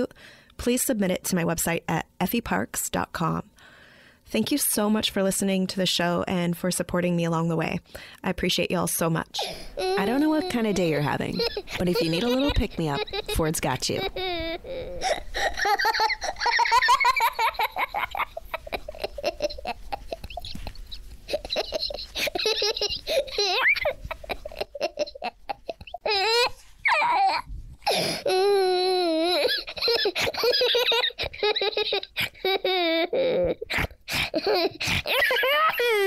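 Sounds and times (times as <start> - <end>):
young child laughing: 9.8 - 36.0.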